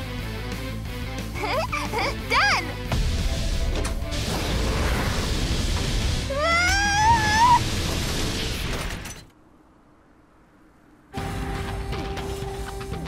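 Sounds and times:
film soundtrack music: 0.0s - 7.7s, 11.1s - 13.0s
rumbling sound effects: 2.9s - 6.4s.

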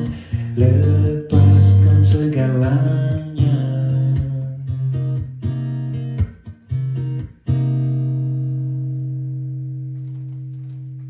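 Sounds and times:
acoustic guitar chord ringing: 0.0s - 10.8s.

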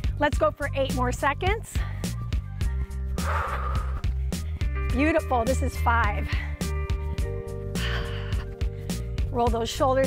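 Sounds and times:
workout music with steady beat: 0.0s - 10.0s.

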